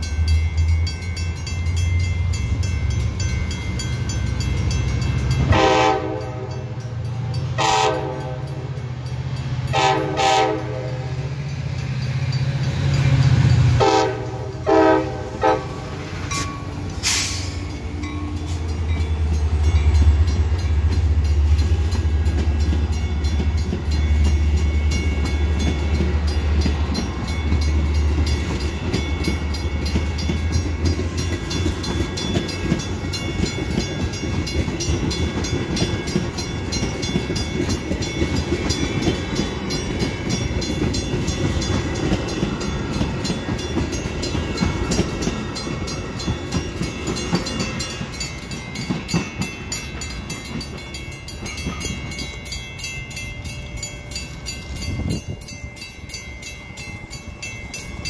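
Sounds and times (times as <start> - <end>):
train horn blast: 5.4 - 6.8, 7.6 - 8.8, 9.7 - 11.2, 13.8 - 15.9.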